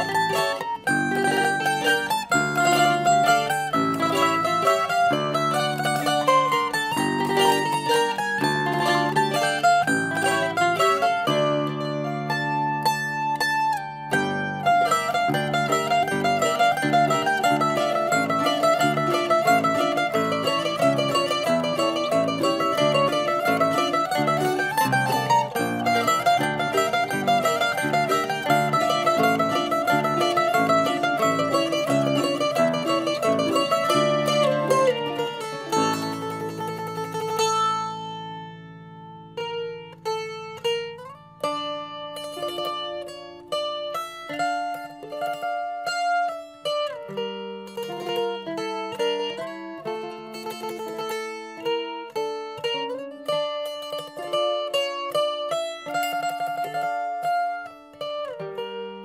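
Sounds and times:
mandolin picking: 0:00.0 - 0:59.0.

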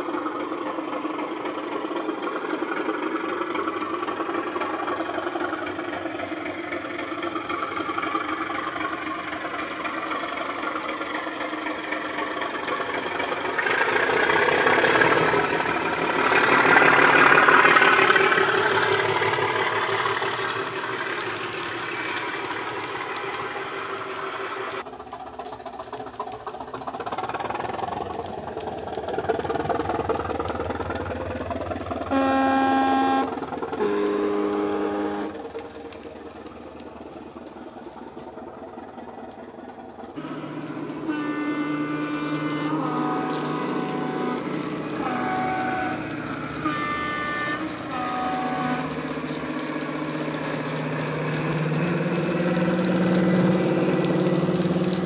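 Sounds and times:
model locomotive engine sound: 0:00.0 - 0:55.0
two-tone horn: 0:32.1 - 0:35.4, 0:40.2 - 0:49.0.

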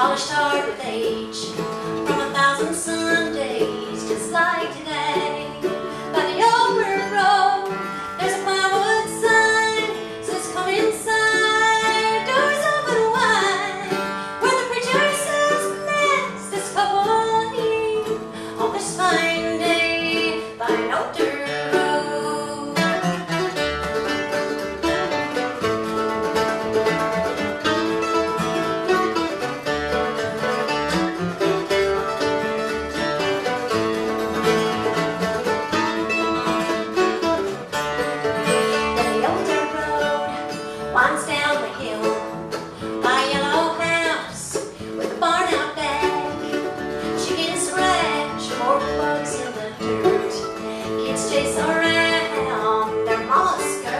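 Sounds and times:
woman singing: 0:00.0 - 0:23.2, 0:39.0 - 0:53.9
acoustic guitar: 0:00.0 - 0:53.9
mandolin: 0:00.0 - 0:53.9
upright bass: 0:00.0 - 0:53.9.

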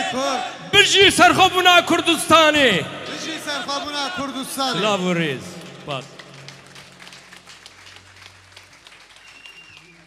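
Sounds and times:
crowd applauding in a hall: 0:04.8 - 0:10.0.

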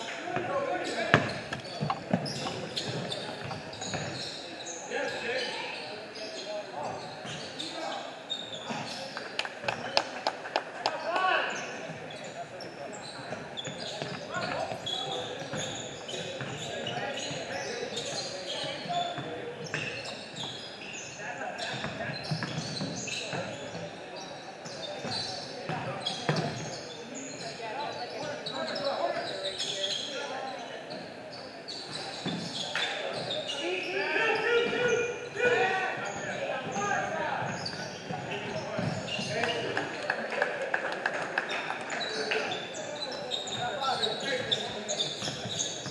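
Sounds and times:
basketball bouncing on hardwood: 0:01.1 - 0:04.2.

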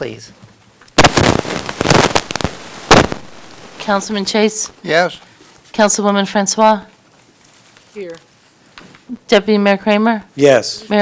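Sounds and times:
microphone crackling and popping: 0:00.9 - 0:03.8.

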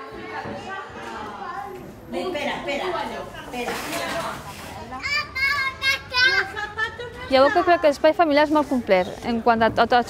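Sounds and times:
young children playing: 0:00.0 - 0:08.1.

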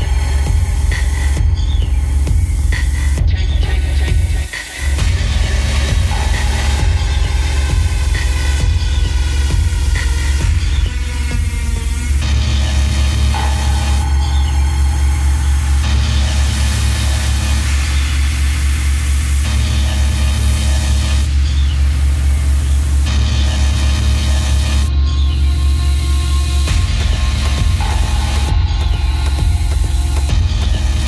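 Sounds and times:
techno music: 0:00.0 - 0:31.0.

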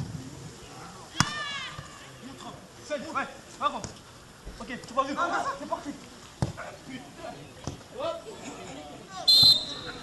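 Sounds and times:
referee's whistle blast: 0:09.2 - 0:10.0.

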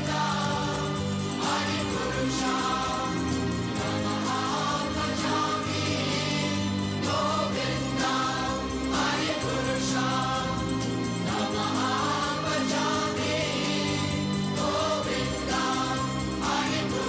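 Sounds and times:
choir singing: 0:00.0 - 0:17.0
instrumental drone: 0:00.0 - 0:17.0.

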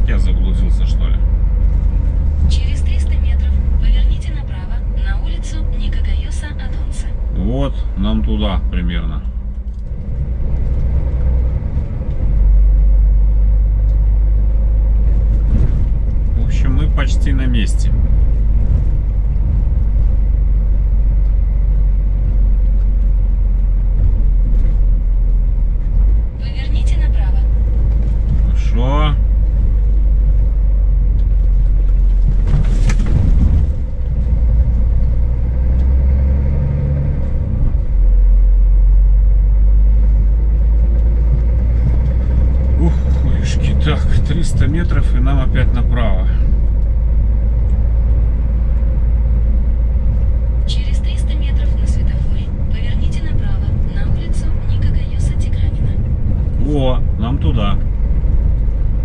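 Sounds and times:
truck engine rumble and road noise: 0:00.0 - 0:59.0.

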